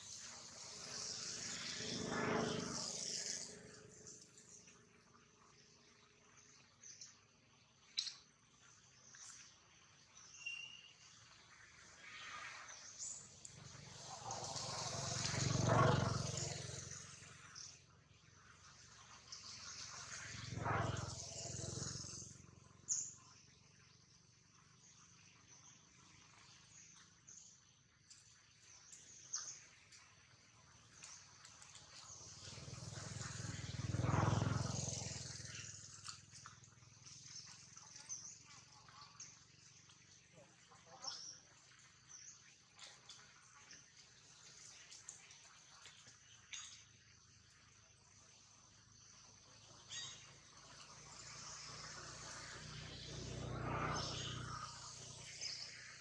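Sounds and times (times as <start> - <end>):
low rumble with hiss: 12.5 - 23.9.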